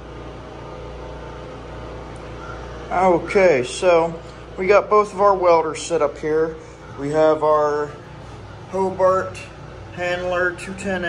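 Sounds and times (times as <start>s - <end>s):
machine hum: 0.0s - 11.0s.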